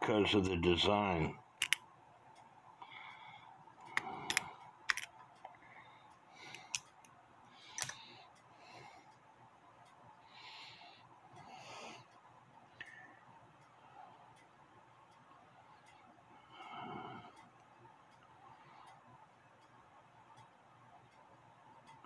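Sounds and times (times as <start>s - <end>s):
metallic clicks and scrapes: 3.9s - 5.2s, 6.5s - 7.1s, 7.7s - 8.1s.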